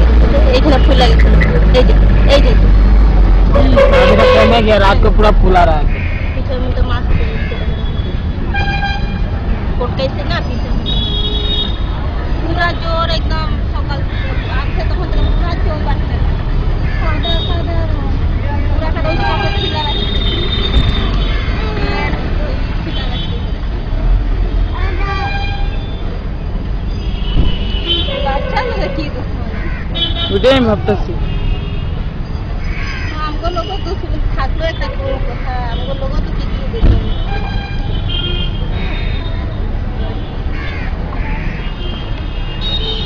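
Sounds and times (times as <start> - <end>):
street traffic rumbling: 0.0 - 43.0
people talking: 0.2 - 2.6, 12.4 - 16.4, 17.0 - 20.3, 28.1 - 29.5, 33.2 - 37.0
vehicle horns tooting: 3.5 - 5.2, 7.3 - 9.4, 10.7 - 12.0, 18.8 - 23.5, 26.9 - 29.2, 29.9 - 32.1, 33.2 - 40.5, 41.2 - 43.0.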